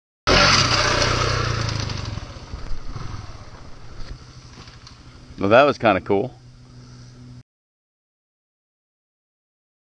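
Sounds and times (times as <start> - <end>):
motorcycle engine: 0.3 - 7.4.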